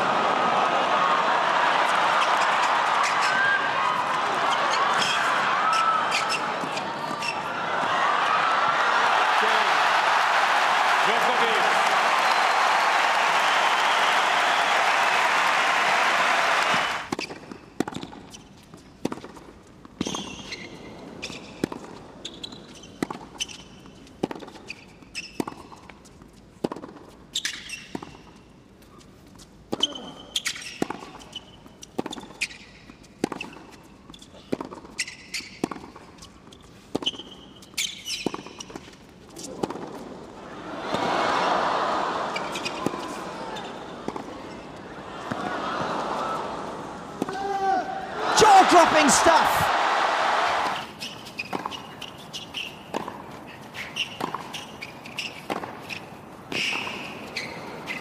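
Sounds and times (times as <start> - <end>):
crowd noise: 0.0 - 17.1, 39.6 - 50.9
shoes squeaking on court: 2.2 - 7.6, 16.7 - 40.1, 42.3 - 45.6, 50.6 - 58.0
applause: 8.8 - 17.1, 48.4 - 50.7
tennis ball bouncing: 17.1 - 20.2, 21.6 - 23.6, 26.6 - 27.2, 34.5 - 36.3, 44.0 - 44.6, 45.2 - 45.5, 50.6 - 56.9.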